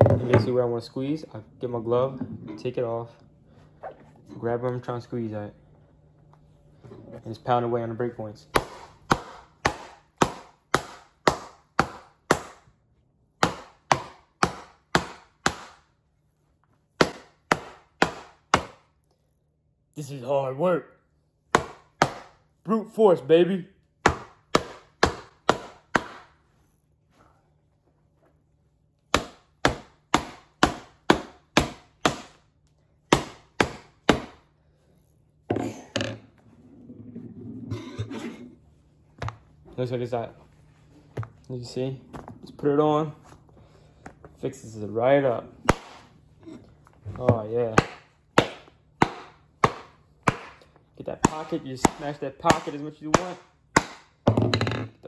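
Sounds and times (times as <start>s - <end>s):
mallet pounding leather glove: 8.5s - 12.7s, 13.4s - 15.9s, 17.0s - 18.9s, 21.5s - 22.4s, 24.0s - 26.4s, 29.1s - 32.4s, 33.1s - 34.4s, 45.6s - 46.1s, 47.2s - 54.6s.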